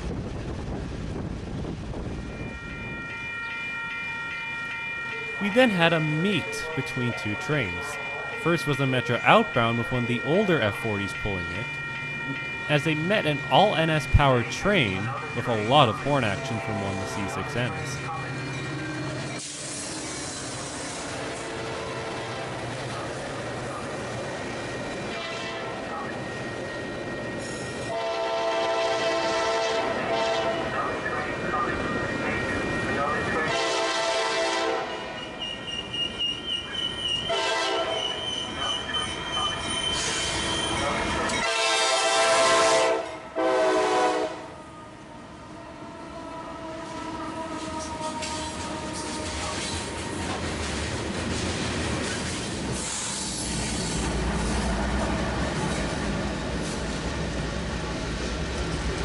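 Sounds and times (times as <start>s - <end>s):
locomotive air horn blasts: 25.1s - 25.8s, 27.9s - 30.7s, 33.5s - 35.2s, 37.3s - 38.0s, 41.4s - 44.6s
high wheel squeal: 35.0s - 41.5s.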